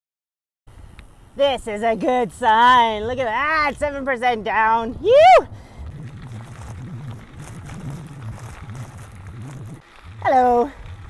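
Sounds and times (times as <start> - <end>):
bicycle tyres on gravel: 0.7 - 11.0
wind on microphone: 0.8 - 11.0.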